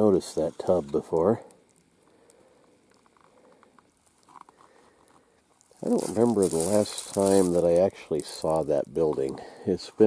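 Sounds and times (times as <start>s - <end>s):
footsteps on dry forest ground: 5.8s - 9.4s.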